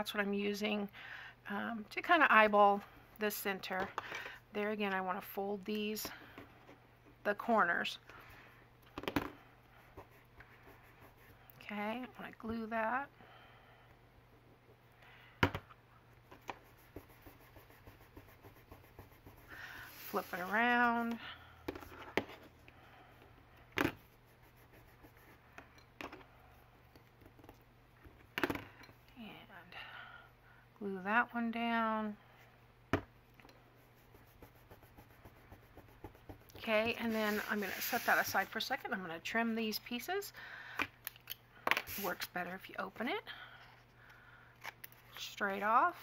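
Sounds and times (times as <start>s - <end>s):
low steady hum: 0.0s - 46.0s.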